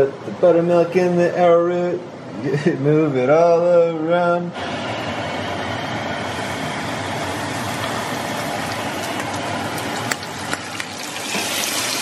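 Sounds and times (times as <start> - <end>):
fish sizzling in hot oil: 6.2 - 12.0
oil popping and crackling: 7.1 - 12.0.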